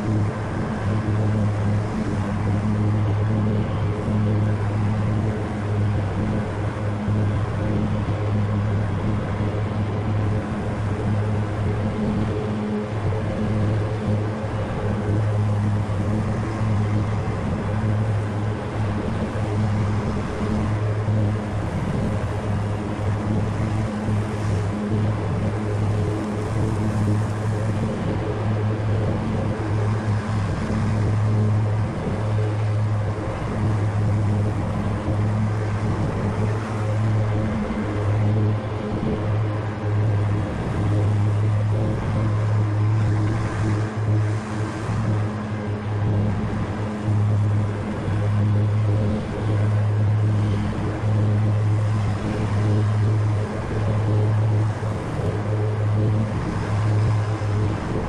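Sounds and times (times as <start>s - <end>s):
riding mower engine drone: 0.0s - 58.0s.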